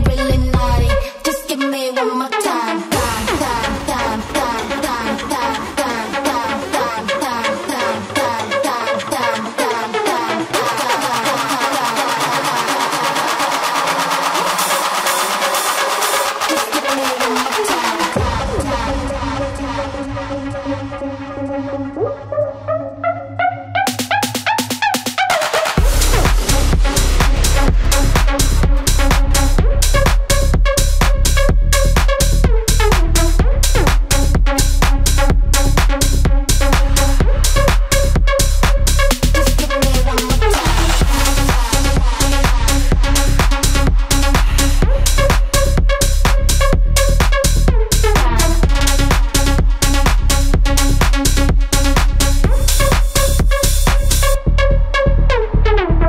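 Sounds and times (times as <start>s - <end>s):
four-on-the-floor kick drum: 0.0s - 1.0s, 25.8s - 54.5s
tech house music: 0.0s - 56.0s
repeating synth notes: 2.8s - 56.0s
rapid hi-hat ticks: 25.8s - 54.4s.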